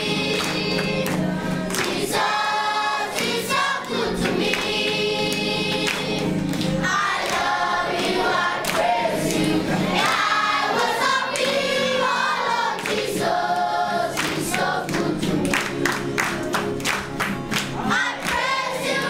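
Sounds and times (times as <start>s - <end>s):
choir singing: 0.0s - 16.6s, 17.8s - 19.0s.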